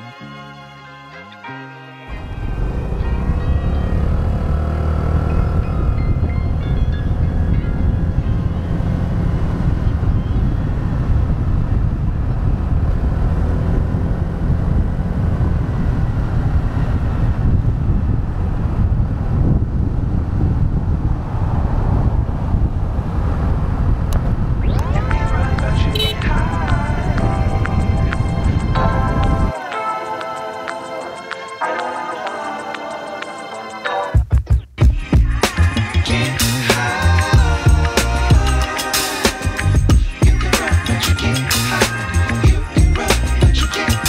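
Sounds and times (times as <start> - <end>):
scooter engine: 2.1 - 10.3, 24.8 - 29.5
road noise: 2.1 - 33.9
wind on microphone: 5.2 - 29.5.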